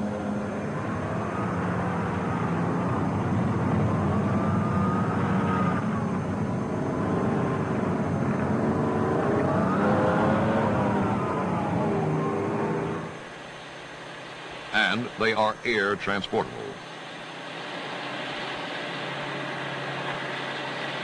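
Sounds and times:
tracked vehicle diesel engine whining: 0:00.0 - 0:21.0.

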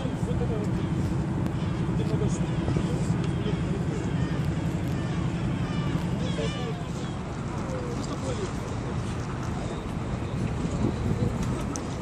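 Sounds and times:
distant traffic hum: 0:00.0 - 0:12.0.

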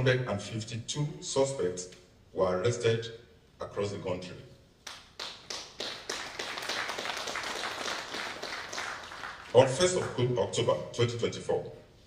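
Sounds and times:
audience applause: 0:05.2 - 0:09.7.

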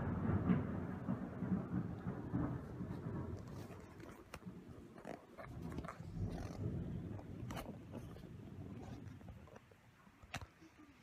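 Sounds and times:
kitten purring: 0:02.8 - 0:09.7.

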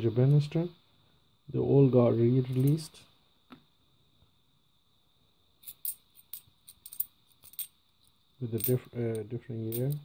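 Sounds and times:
coins clinking in hand: 0:05.6 - 0:07.8, 0:08.5 - 0:10.0.

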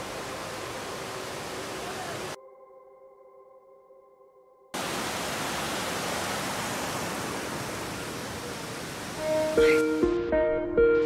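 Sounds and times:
river rushing over boulders: 0:00.0 - 0:02.4, 0:04.8 - 0:09.8.

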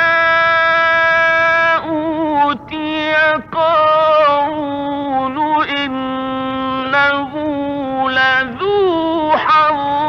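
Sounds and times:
man chanting a long note: 0:00.0 - 0:10.0.

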